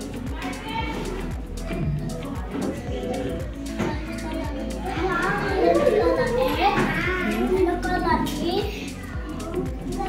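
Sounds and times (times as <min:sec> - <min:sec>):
background music: 0:00.0 - 0:10.0
children talking and calling out: 0:00.0 - 0:10.0.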